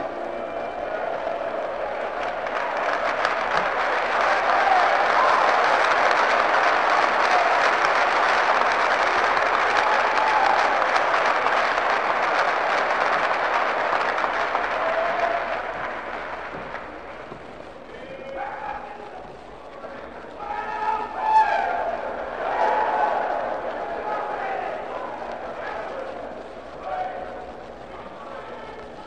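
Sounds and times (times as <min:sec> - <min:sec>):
audience applauding: 0:00.0 - 0:29.0.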